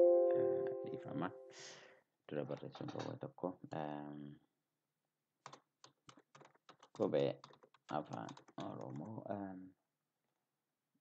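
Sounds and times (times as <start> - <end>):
person speaking: 0.0 - 4.4, 6.8 - 9.8
typing on computer keyboard: 5.4 - 9.2.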